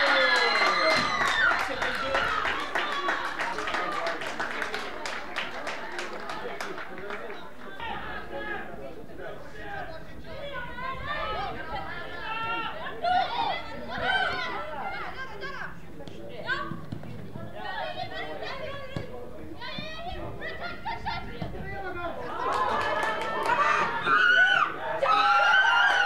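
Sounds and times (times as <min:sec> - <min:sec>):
players calling and shouting: 0:00.0 - 0:04.5, 0:07.3 - 0:26.0.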